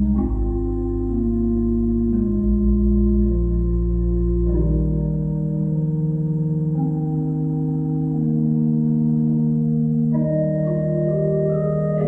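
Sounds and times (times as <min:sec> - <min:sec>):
pipe organ chords: 0:00.0 - 0:12.0.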